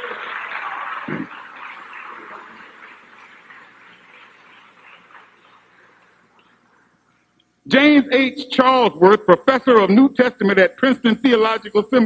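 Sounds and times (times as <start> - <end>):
audience clapping: 0.0 - 6.6.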